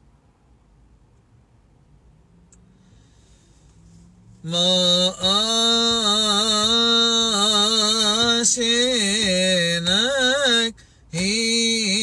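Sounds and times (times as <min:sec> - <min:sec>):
man chanting a hymn: 0:04.4 - 0:12.0.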